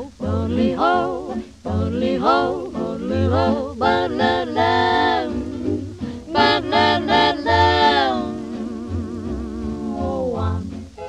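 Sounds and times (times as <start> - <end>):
swing jazz record playing: 0.0 - 11.0.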